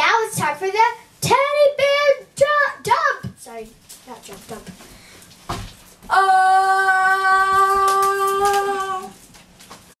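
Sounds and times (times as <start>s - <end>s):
child singing a long note: 6.1s - 9.2s.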